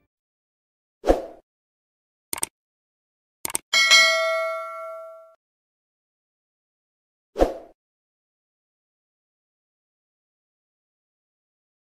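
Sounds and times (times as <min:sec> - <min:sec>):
notification bell ding: 0:03.8 - 0:05.4.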